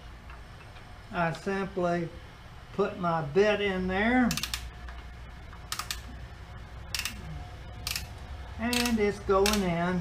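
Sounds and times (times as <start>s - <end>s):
hand ratchet clicking: 4.3s - 4.7s, 5.7s - 6.1s, 6.9s - 7.2s, 7.8s - 9.7s.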